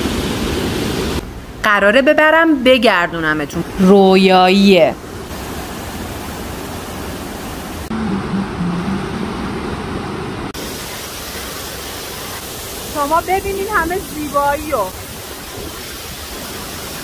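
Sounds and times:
water rushing over cascades: 5.3 - 17.0.

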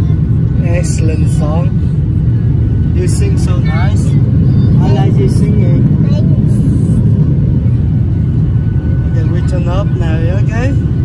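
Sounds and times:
jet cabin engine and airflow roar: 0.0 - 11.0.

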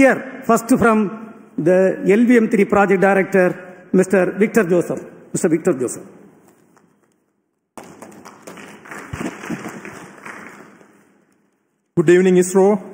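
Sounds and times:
audience applause in a hall: 7.8 - 11.1.

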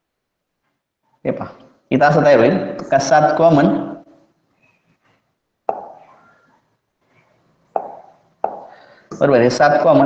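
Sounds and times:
pen tapping on board: 5.7 - 6.0, 7.8 - 8.8.

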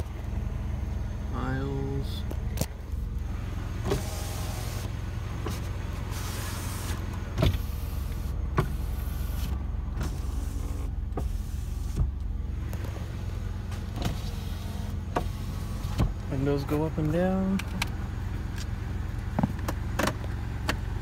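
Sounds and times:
car engine idling: 0.0 - 21.0
power window motor: 3.3 - 13.0, 13.7 - 16.2.

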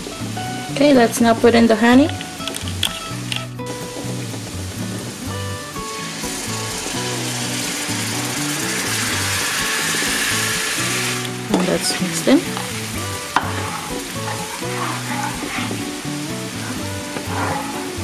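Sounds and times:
background music: 0.0 - 18.0
butter sizzling in a frying pan: 1.7 - 18.0.

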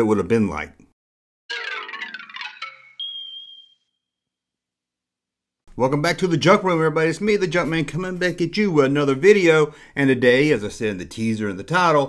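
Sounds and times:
high ding: 1.5 - 3.8.

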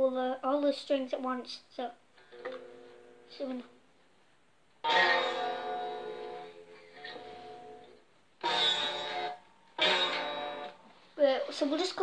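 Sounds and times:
electric guitar strums: 4.8 - 11.0.

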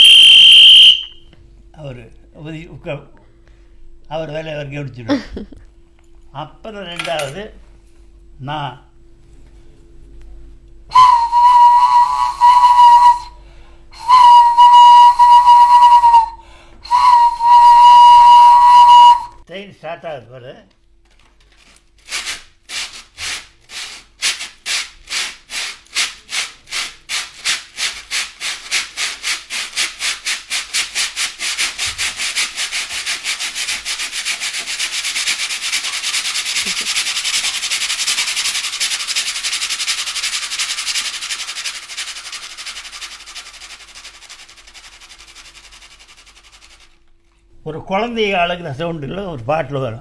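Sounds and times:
man imitating steam locomotive: 11.0 - 13.4, 35.0 - 41.7.

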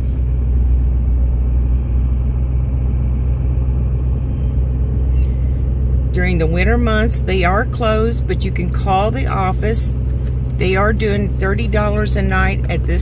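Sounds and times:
vehicle rumble from inside cab: 0.0 - 13.0.

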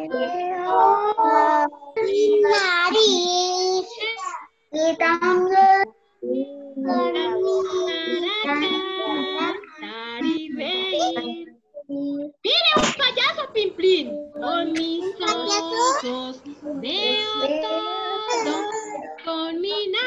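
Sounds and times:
children and adult singing: 0.0 - 3.9, 4.8 - 12.1, 14.0 - 20.0.

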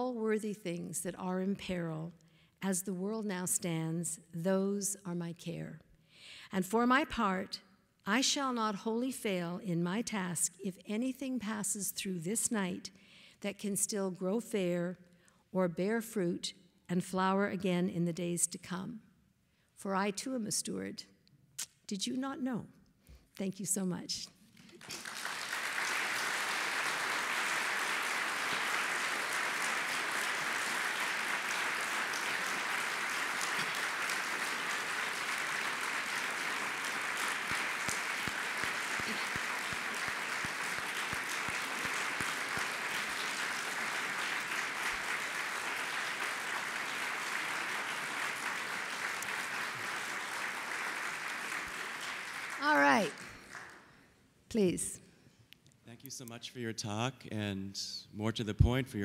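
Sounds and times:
audience applauding: 24.6 - 53.9.

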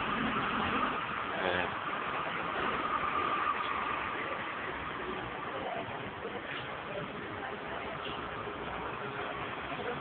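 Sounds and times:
city street traffic: 0.0 - 10.0.

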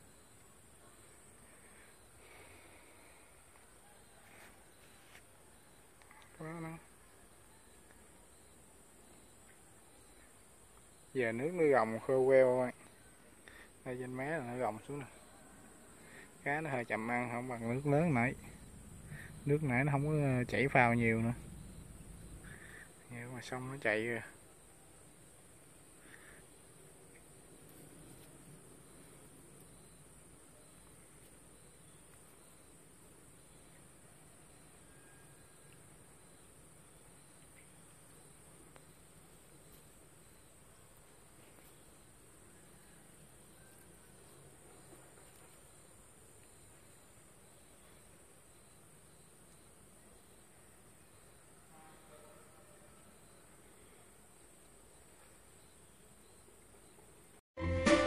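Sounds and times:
high-pitched insect trill: 0.0 - 40.7, 41.6 - 53.9.

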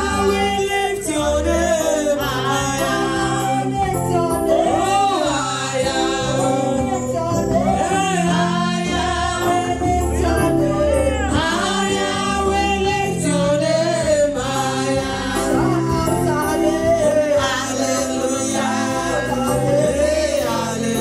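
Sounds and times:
band with drum kit: 0.0 - 21.0
sustained bass line: 0.0 - 21.0
women singing gospel: 0.0 - 21.0.

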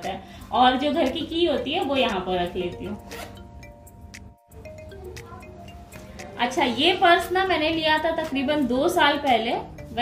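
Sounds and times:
soft background music: 0.0 - 10.0
zip being pulled: 3.0 - 3.4.

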